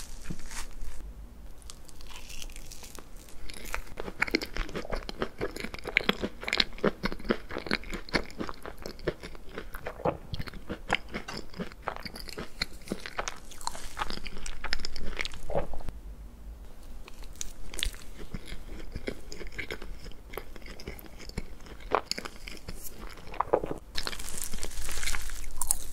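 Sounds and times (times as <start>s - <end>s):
chewing cake: 1.6s - 15.9s, 17.0s - 25.9s.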